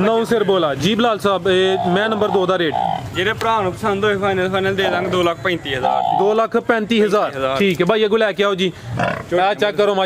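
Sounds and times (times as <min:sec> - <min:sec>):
man talking: 0:00.0 - 0:10.0
water buffalo grunt: 0:09.0 - 0:09.3.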